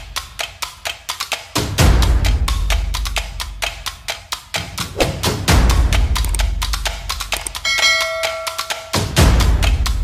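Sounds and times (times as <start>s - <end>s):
electronic bell chime: 7.6s - 9.2s.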